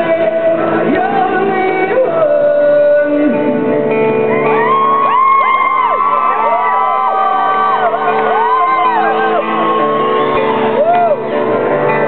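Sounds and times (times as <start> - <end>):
crowd singing and whooping: 0.0 - 12.0.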